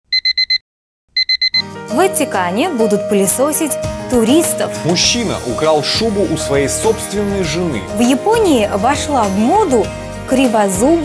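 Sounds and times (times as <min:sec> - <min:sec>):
alarm clock beeping: 0:00.1 - 0:00.6, 0:01.2 - 0:01.7
music: 0:01.6 - 0:11.0.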